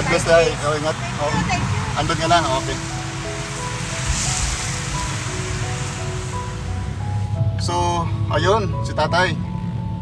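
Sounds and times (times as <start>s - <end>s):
tyres hissing on wet road: 0.0s - 8.7s
low car rumble: 0.0s - 10.0s
soft background music: 0.0s - 10.0s.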